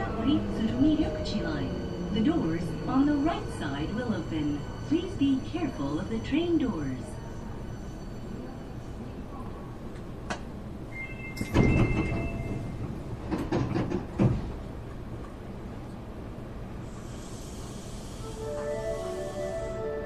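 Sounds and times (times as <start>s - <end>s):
train low rumble: 0.0s - 20.0s
train doors sliding: 10.0s - 14.8s.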